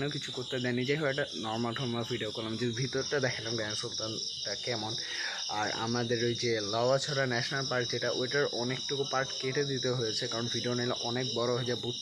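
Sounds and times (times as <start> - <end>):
crickets chirping: 0.0 - 12.0
young man talking: 0.0 - 12.0.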